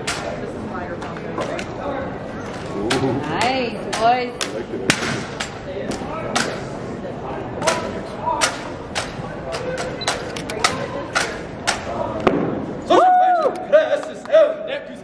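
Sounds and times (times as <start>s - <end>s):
rifles slapped and caught by hand: 0.0s - 0.4s, 7.6s - 12.5s.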